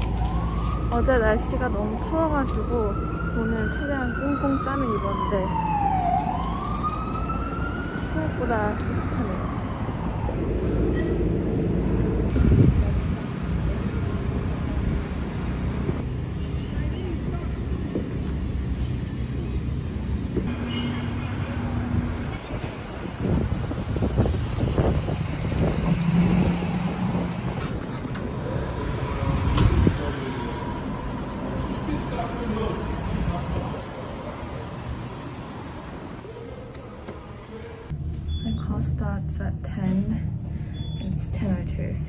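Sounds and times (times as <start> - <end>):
traffic rumble: 0.0 - 42.0.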